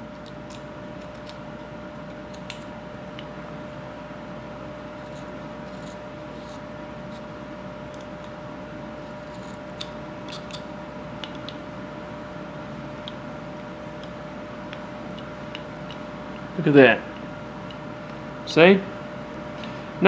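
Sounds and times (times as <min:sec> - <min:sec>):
steady background hum: 0:00.0 - 0:20.0
knife scraping wood: 0:04.9 - 0:08.4, 0:09.0 - 0:10.7.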